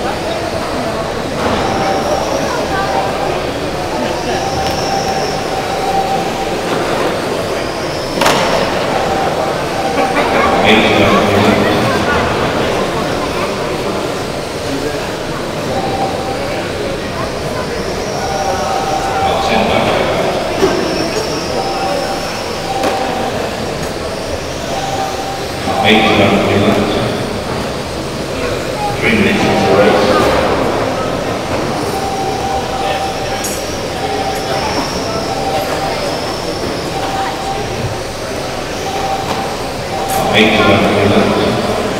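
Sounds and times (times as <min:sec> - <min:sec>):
electric motors whining: 0:00.0 - 0:41.9.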